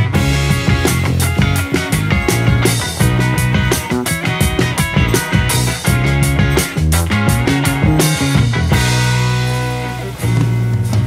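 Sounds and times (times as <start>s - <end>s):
rock music with steady beat: 0.0s - 11.0s.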